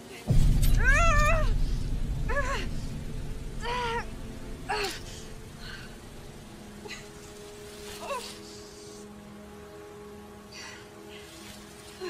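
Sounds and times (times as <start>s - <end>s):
low rumble: 0.3s - 7.8s.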